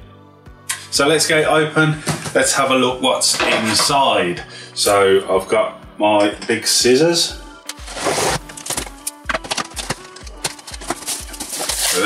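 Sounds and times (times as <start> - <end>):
background music with steady beat: 0.0 - 12.0
scissors cutting packing tape: 7.7 - 12.0
cardboard flaps rustling: 7.9 - 12.0.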